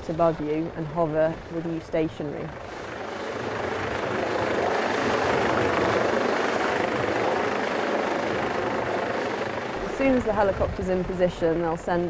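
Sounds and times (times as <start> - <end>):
helicopter rotors and engines: 0.0 - 12.0.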